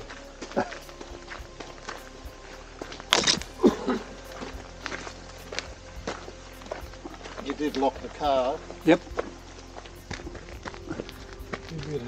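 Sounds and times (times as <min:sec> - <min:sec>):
footsteps on dirt track: 0:00.0 - 0:12.0
soft background music: 0:00.0 - 0:12.0.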